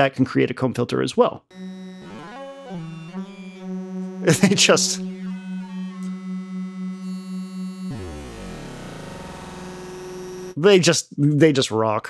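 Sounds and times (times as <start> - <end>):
pulsing comb-filtered synthesizer tone: 1.5 - 10.6.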